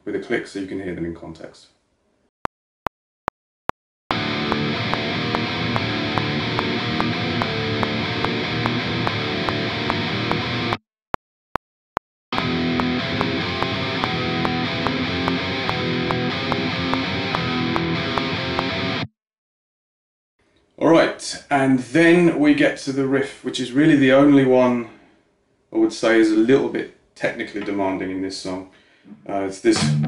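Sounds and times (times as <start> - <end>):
metronome click: 4.1 - 10.4, 12.4 - 18.8
distorted electric guitar riff: 4.1 - 10.8, 12.3 - 19.1, 29.8 - 30.0.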